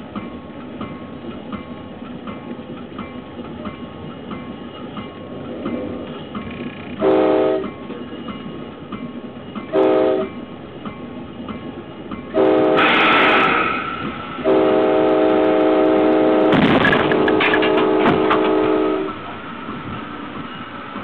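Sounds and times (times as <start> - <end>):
locomotive air horn blasts: 7.0 - 7.7, 9.7 - 10.3, 12.3 - 13.5, 14.4 - 19.2
emergency brake air rush: 12.8 - 14.5.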